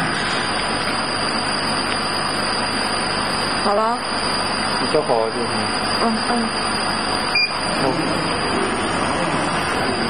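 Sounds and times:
laser cutting machine rushing: 0:06.6 - 0:10.0.

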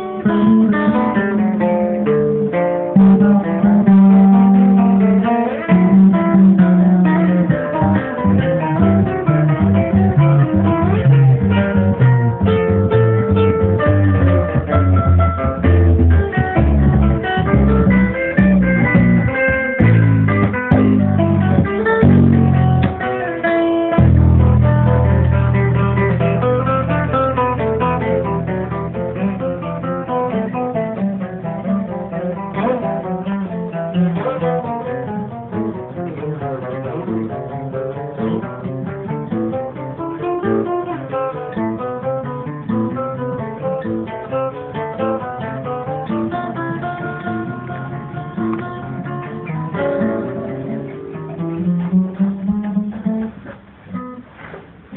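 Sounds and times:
deep plucked bass notes: 0:00.0 - 0:40.2, 0:41.0 - 0:54.0
picked guitar notes: 0:00.0 - 0:54.9.

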